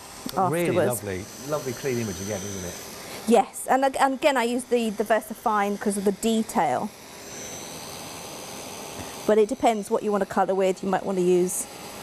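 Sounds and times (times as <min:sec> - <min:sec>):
faint high whine: 0:00.0 - 0:12.0
heat tool fan whirring: 0:00.0 - 0:12.0.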